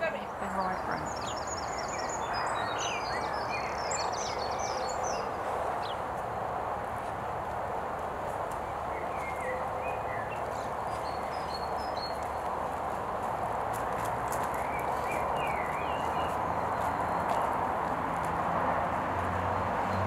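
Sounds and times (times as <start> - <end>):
small birds chirping: 0.0 - 6.3, 8.4 - 17.7.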